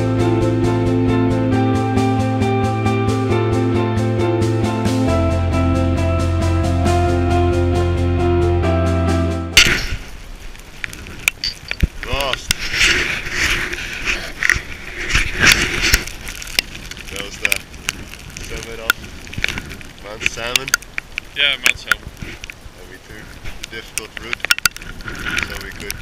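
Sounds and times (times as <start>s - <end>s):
background music: 0.0s - 9.7s
gusty wind on microphone: 9.6s - 26.0s.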